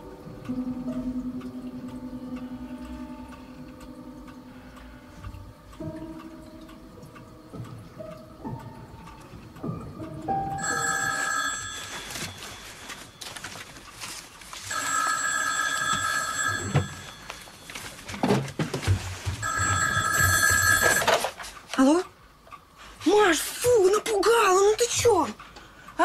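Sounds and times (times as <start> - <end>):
telephone ringing: 10.6 - 13.5, 14.7 - 18.1, 19.4 - 21.5.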